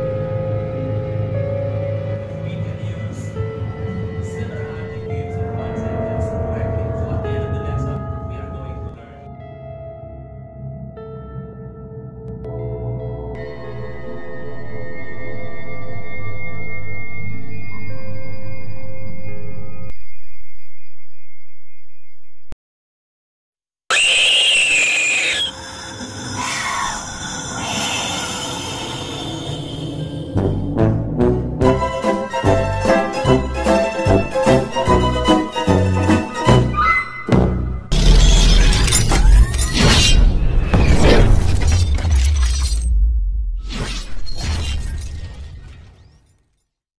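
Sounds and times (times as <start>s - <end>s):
deep bass rumble: 0.0s - 9.1s, 29.2s - 32.8s
shrill scream: 23.9s - 29.8s
falling wail: 23.9s - 30.3s.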